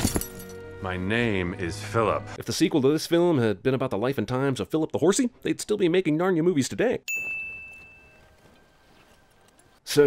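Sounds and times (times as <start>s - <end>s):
bell-like ding: 7.1s - 8.3s.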